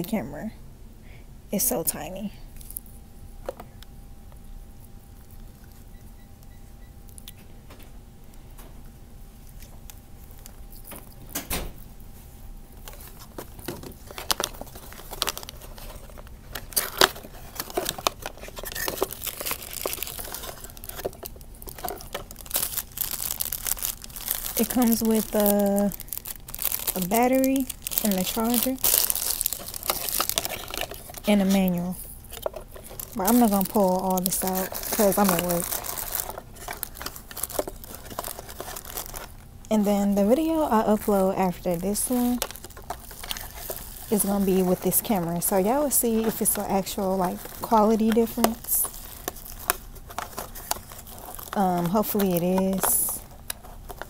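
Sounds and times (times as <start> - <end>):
low room hum: 0.0 - 54.0
plastic packaging crinkling: 4.7 - 7.4, 9.4 - 54.0.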